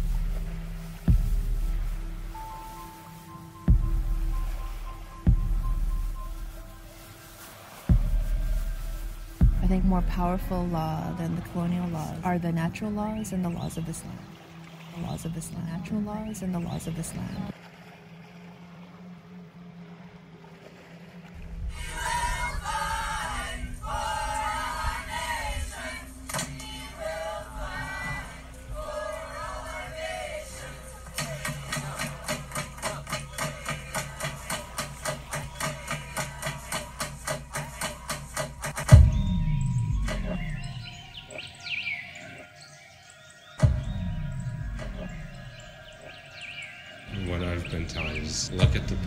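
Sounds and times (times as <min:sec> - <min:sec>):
fast electronic beat: 0:07.9 - 0:10.8.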